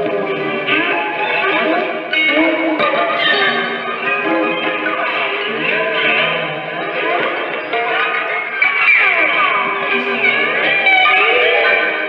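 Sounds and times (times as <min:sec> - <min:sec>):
prepared electric guitar gliding tones: 0:00.0 - 0:12.0.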